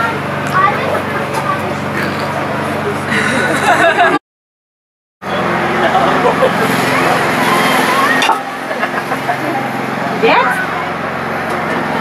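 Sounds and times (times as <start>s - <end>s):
people talking in background: 0.0s - 4.1s, 5.2s - 12.0s
low engine-like hum: 0.0s - 4.2s, 5.2s - 12.0s.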